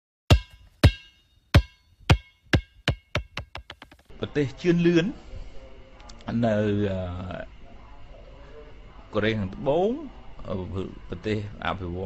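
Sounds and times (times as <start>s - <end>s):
drum-machine hits with ringing tone: 0.3s - 4.0s.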